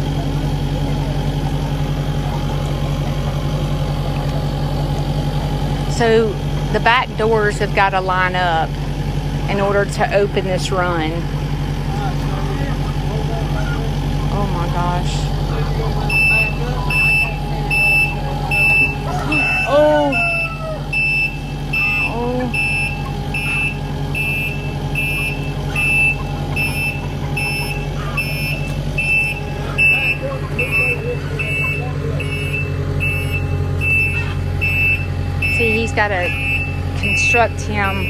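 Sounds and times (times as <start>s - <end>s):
diesel engine running: 0.0s - 38.0s
backup alarm beeping: 4.6s - 11.3s, 14.0s - 38.0s.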